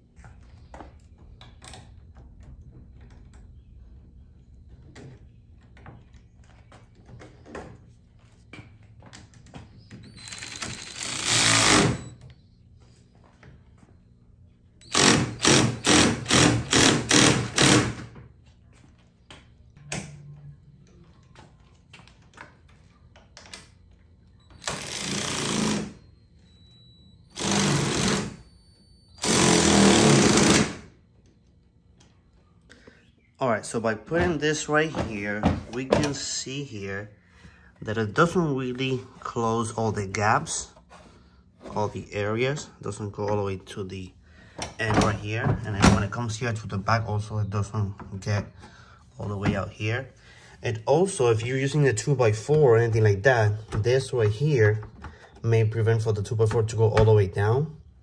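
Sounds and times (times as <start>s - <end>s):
electric ratchet tightening bolt: 10.2s - 12.1s, 14.8s - 18.0s, 24.6s - 26.0s, 27.4s - 28.4s.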